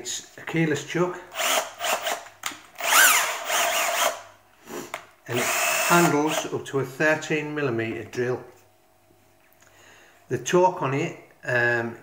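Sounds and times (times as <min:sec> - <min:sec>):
cordless drill motor whine: 0:01.3 - 0:02.2, 0:02.8 - 0:04.2, 0:05.3 - 0:06.5
drill click: 0:01.4 - 0:04.2, 0:05.3 - 0:06.5.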